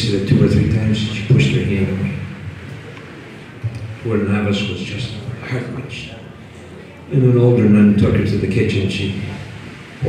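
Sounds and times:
man talking through microphone: 0.0s - 2.5s, 3.8s - 6.4s, 7.0s - 9.6s.

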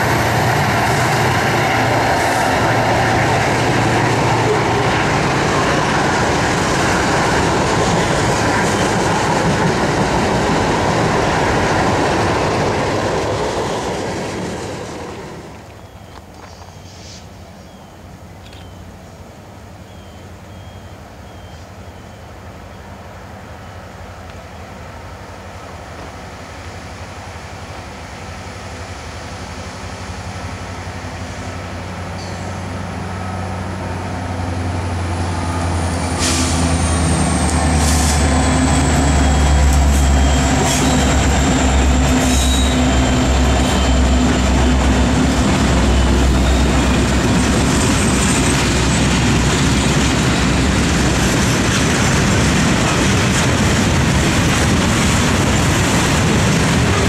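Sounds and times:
diesel locomotive engine: 0.0s - 57.0s
freight cars rolling: 34.5s - 57.0s.

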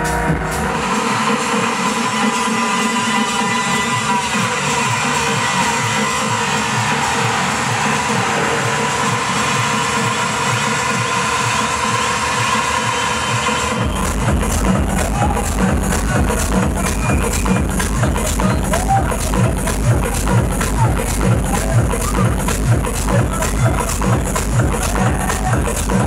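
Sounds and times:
electronic dance music: 0.0s - 26.0s
kick drum and deep bass: 0.0s - 26.0s.

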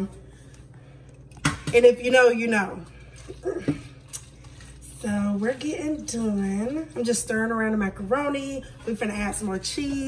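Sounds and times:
spoon stirring macaroni: 2.8s - 10.0s.

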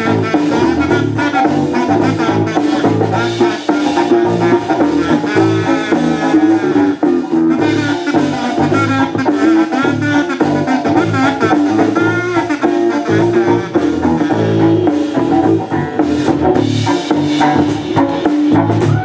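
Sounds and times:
bass guitar: 0.0s - 19.0s
bending guitar lead line: 0.0s - 19.0s
drum kit steady beat: 0.0s - 19.0s.

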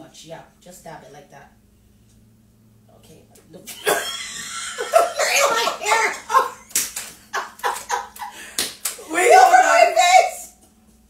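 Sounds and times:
hand slaps: 6.7s - 9.0s
woman's high-pitched drawn-out voice: 9.1s - 10.5s.

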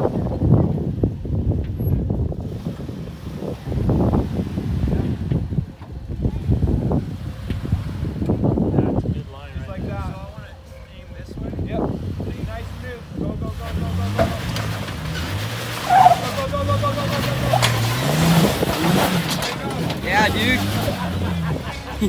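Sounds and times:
engine revving under load: 11.6s - 22.0s.

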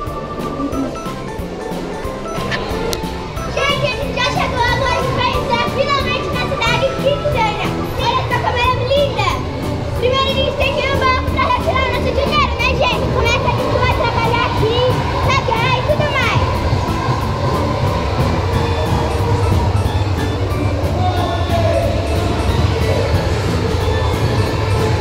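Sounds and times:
background music with steady beat: 0.0s - 25.0s
children talking: 0.0s - 25.0s.

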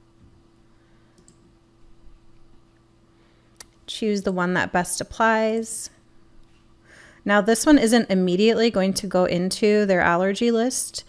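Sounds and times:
low steady hum: 0.0s - 11.0s
computer mouse clicks: 1.2s - 1.5s.

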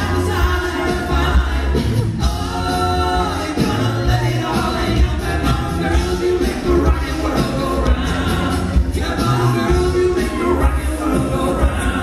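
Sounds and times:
deep bass voice: 0.0s - 12.0s
male group singing in harmony: 0.0s - 12.0s.

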